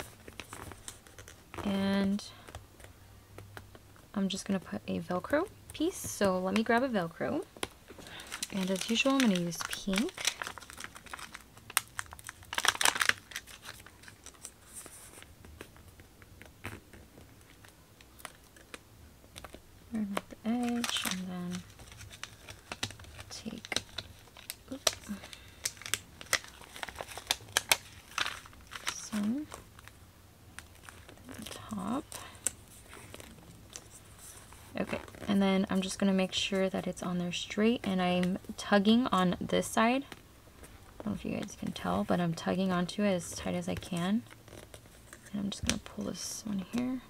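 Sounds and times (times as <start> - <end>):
velcro dots peeled off crackling: 0.0 - 1.8, 7.6 - 36.0, 43.4 - 47.0
plastic backing sheet crinkling: 0.0 - 47.0.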